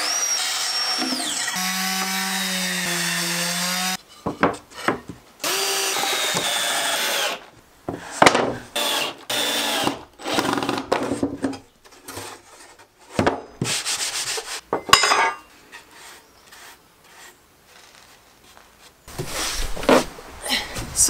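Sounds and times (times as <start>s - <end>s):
wooden knocks and clatter: 4.2s - 5.2s, 10.4s - 13.7s
cordless drill driving screws: 8.8s - 10.8s.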